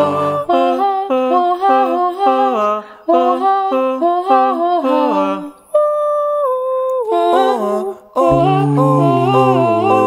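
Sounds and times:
a cappella ensemble singing: 0.0 - 10.0.

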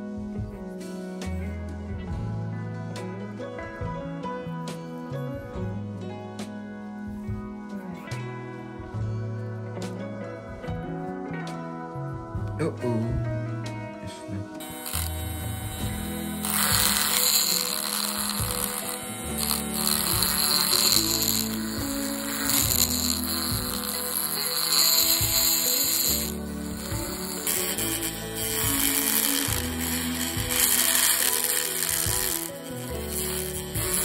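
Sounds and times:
background music: 0.0 - 34.0
rotary tool grinding: 14.6 - 34.0.

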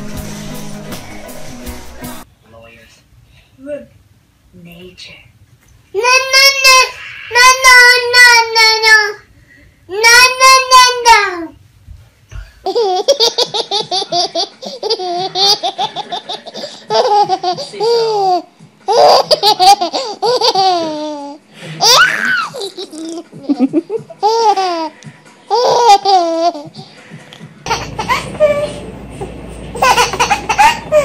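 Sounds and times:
baby laughing: 12.6 - 26.8, 27.6 - 28.9, 29.7 - 31.0.

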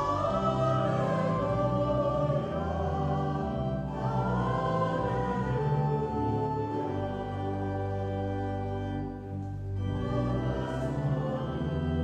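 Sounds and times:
church choir singing: 0.0 - 12.0
pipe organ: 0.0 - 12.0.

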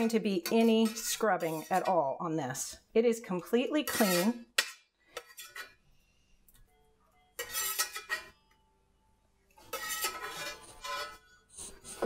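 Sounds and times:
spatula scraping a skillet: 0.0 - 2.7, 3.8 - 5.9, 7.4 - 8.4, 9.6 - 12.0.

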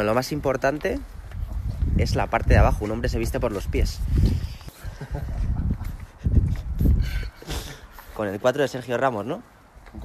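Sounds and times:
wind rumble on microphone: 0.0 - 7.8
footsteps on pavement: 0.0 - 10.0.

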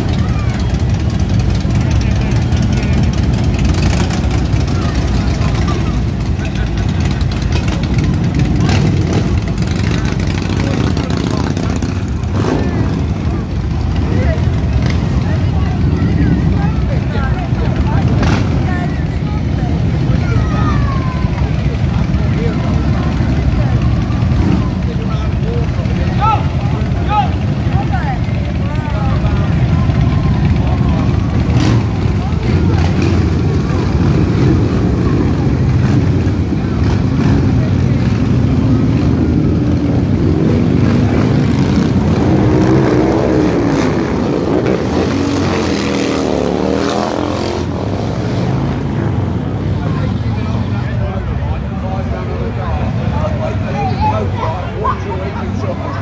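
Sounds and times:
motorcycle engines rumbling: 0.0 - 56.0.

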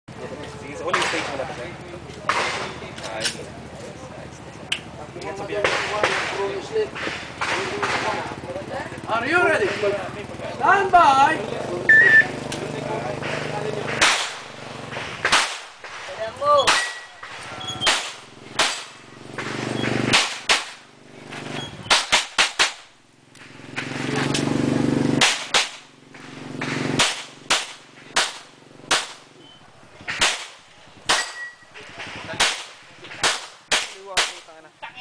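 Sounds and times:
handgun shots: 13.9 - 14.5, 15.2 - 15.8, 16.7 - 17.2, 17.8 - 20.8, 21.9 - 22.9, 25.2 - 25.9, 26.6 - 29.2, 30.1 - 31.6, 32.4 - 34.4.

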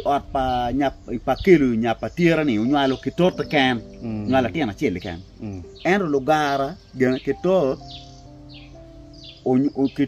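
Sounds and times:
man speaking: 0.0 - 7.8, 9.5 - 10.0.

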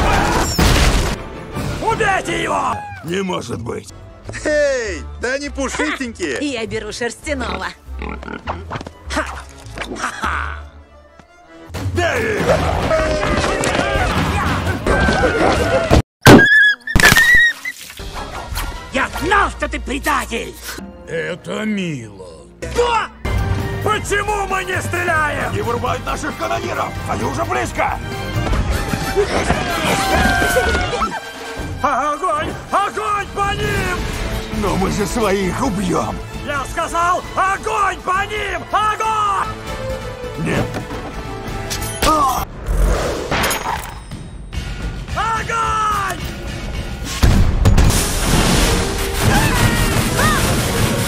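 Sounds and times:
dramatic orchestral score: 0.0 - 8.0, 18.0 - 42.8
background music: 0.0 - 16.0, 17.8 - 51.0.

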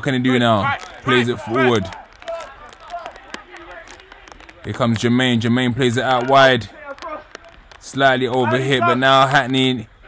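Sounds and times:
distant players shouting: 0.6 - 4.8, 5.8 - 9.3.

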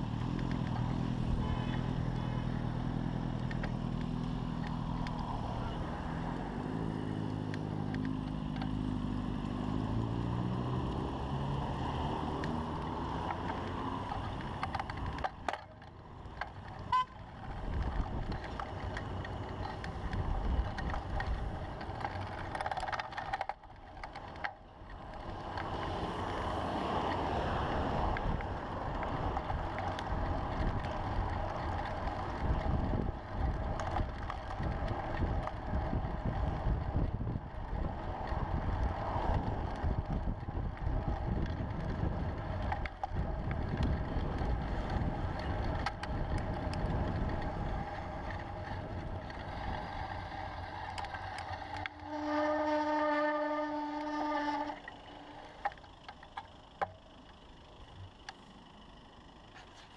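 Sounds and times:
road and traffic rumble: 0.0 - 59.9
wind buffeting microphone: 17.4 - 22.7, 25.2 - 54.7
steady horn note: 51.9 - 54.8.

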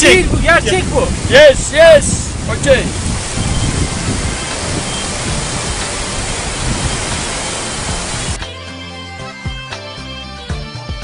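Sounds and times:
stream rushing over rocks: 0.0 - 8.4.

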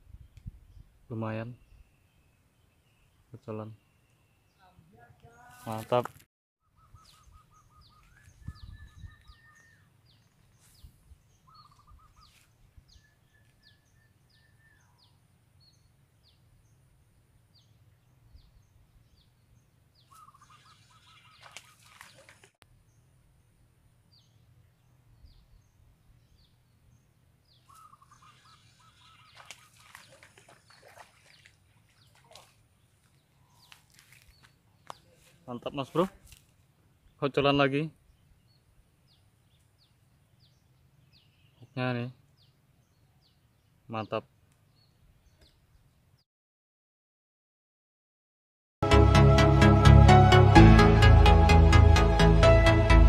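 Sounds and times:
high bird chirps: 6.6 - 15.2, 20.0 - 22.3, 27.5 - 32.5.

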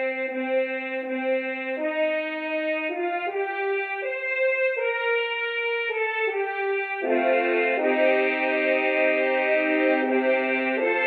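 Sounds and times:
french horn melody: 0.0 - 11.0.

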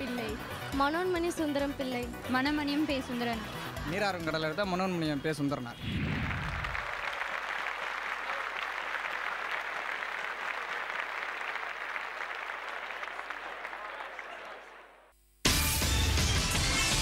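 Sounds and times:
crowd applause: 6.0 - 15.1.

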